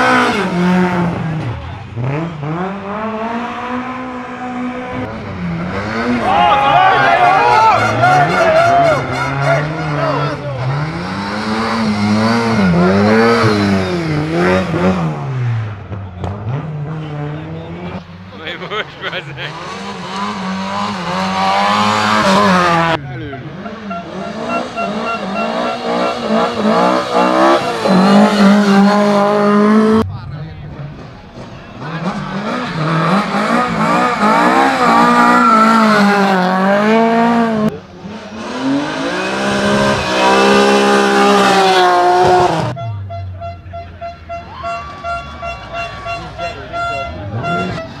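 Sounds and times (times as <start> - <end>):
rally car engines revving: 0.0 - 48.0.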